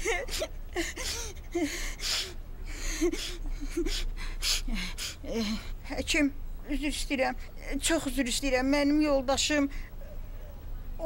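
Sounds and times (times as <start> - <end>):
woman sobbing: 0.0 - 5.9.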